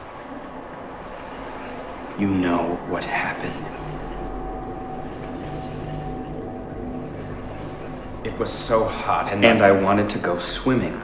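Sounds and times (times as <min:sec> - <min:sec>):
low steady drone: 0:00.0 - 0:11.0.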